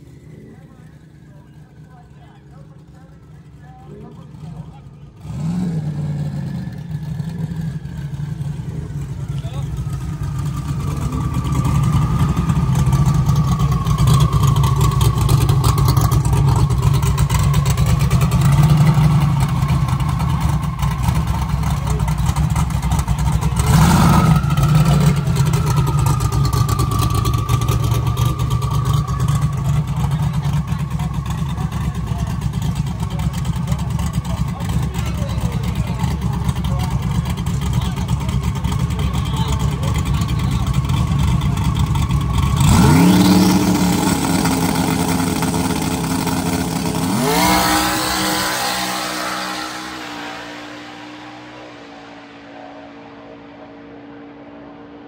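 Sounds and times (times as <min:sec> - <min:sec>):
car engine rumbling with whine: 0:00.0 - 0:55.0.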